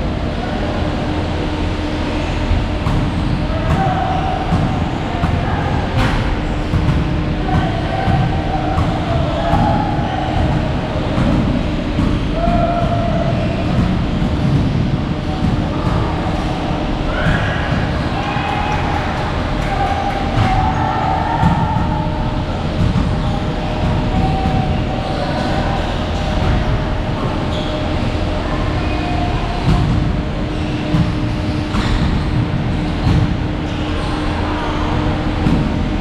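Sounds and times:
machine rumble: 0.0s - 36.0s.

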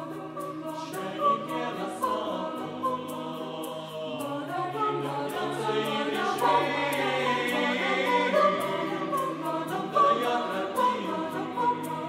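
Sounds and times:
egg shaker beat: 0.0s - 12.0s
mixed choir singing in harmony: 0.0s - 12.0s.

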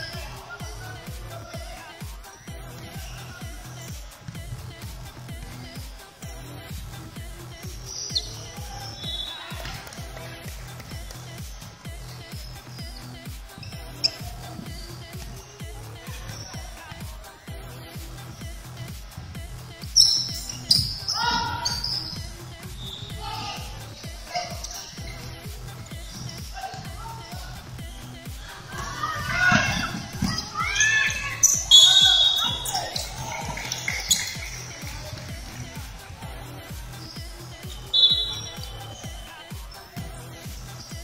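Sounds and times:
sneaker squeaks: 0.0s - 0.8s, 2.2s - 5.8s, 7.5s - 17.1s, 19.8s - 36.2s, 36.8s - 41.0s
background music with steady beat: 0.0s - 41.0s
players shouting: 7.9s - 10.3s, 20.0s - 40.0s
basketball bouncing: 19.9s - 27.0s, 28.7s - 36.1s.

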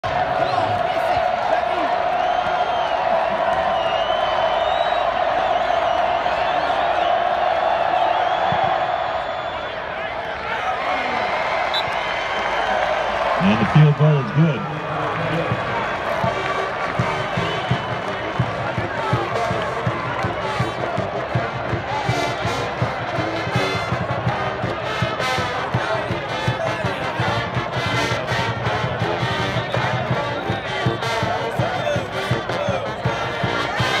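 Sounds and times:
crowd noise: 0.0s - 34.0s
marching band playing: 13.3s - 34.0s.

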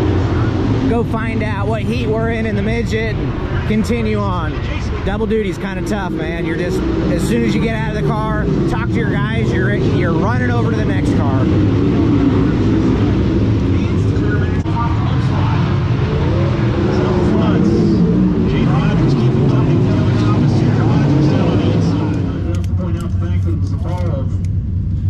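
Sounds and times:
voices: 0.0s - 24.5s
race car engines droning: 0.0s - 25.0s.

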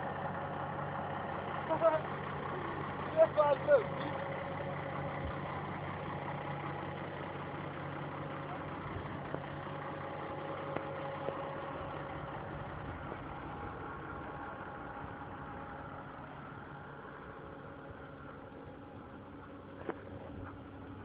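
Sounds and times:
tractor diesel engine idling: 0.0s - 21.0s.

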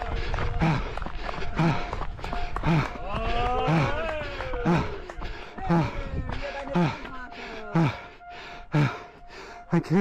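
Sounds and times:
runner breathing hard: 0.0s - 10.0s.

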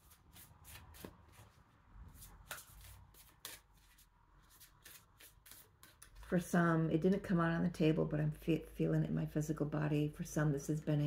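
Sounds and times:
cards being shuffled: 2.2s - 6.3s.

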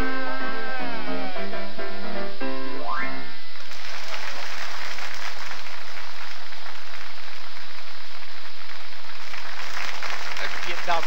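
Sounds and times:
audience applauding: 3.6s - 11.0s.

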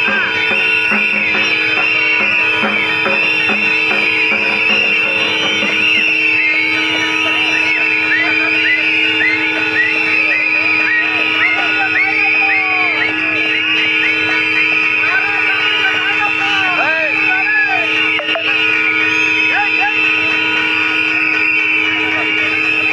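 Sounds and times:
crowd blowing whistles: 0.0s - 22.9s.

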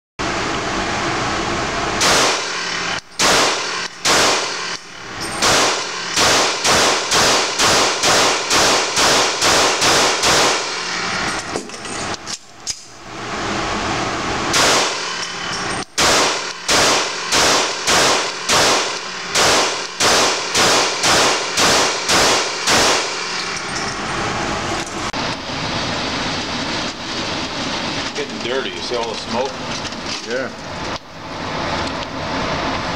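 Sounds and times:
pistol rapid shots indoors: 2.0s - 10.9s, 14.5s - 15.3s, 15.9s - 23.5s.

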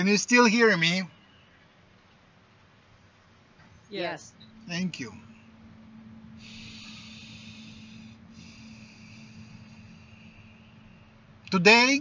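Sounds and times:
steady low hum: 0.0s - 12.0s
man breathing: 6.3s - 11.4s.

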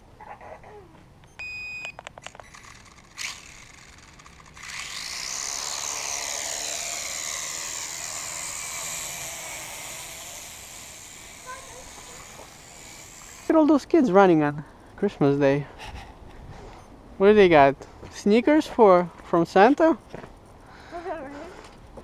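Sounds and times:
drone rotors whirring: 2.4s - 13.6s.

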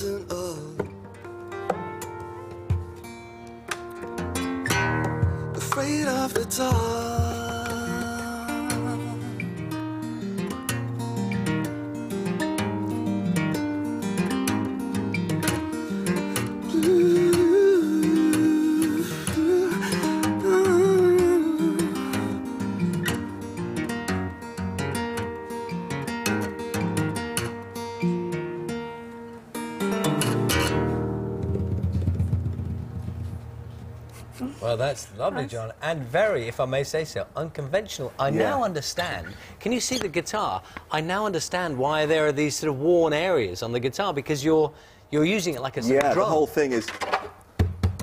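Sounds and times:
tapped acoustic guitar notes: 0.0s - 34.1s
guitar body struck like drum: 30.5s - 33.6s, 47.6s - 48.0s.

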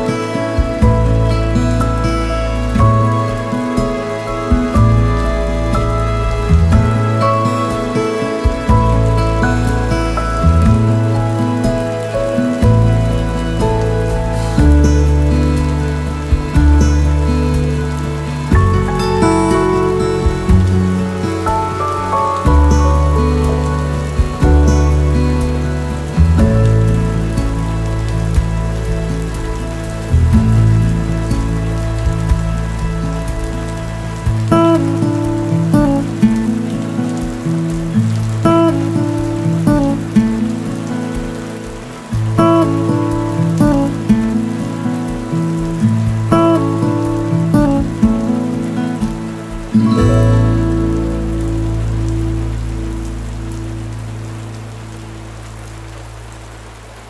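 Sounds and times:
soft instrumental music chords: 0.0s - 56.8s
rain on window glass: 0.0s - 57.0s.

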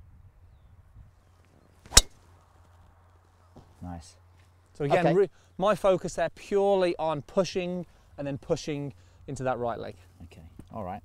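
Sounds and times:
golf driver striking ball: 1.9s - 2.2s.

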